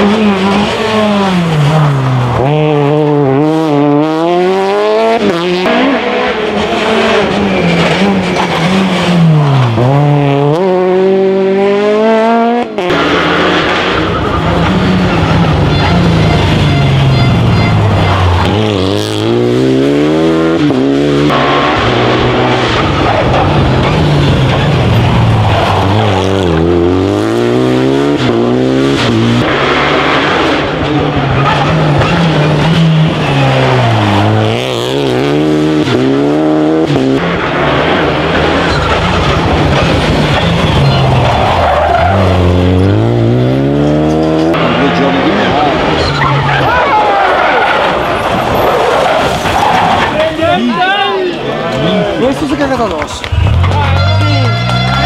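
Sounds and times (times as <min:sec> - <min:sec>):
rally car engines revving: 0:00.0 - 0:55.0.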